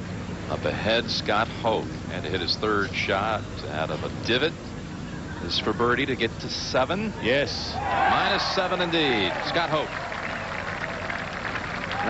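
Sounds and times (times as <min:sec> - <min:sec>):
crowd applauding: 0:07.8 - 0:12.0.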